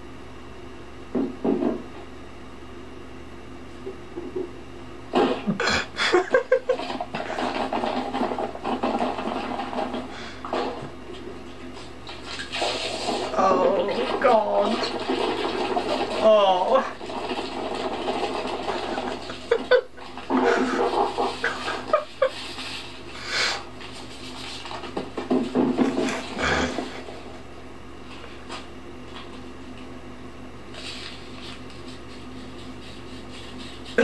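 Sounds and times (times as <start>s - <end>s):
low steady hum: 0.0s - 34.0s
man laughing stifled: 5.5s - 7.5s, 18.8s - 22.6s, 26.0s - 27.1s.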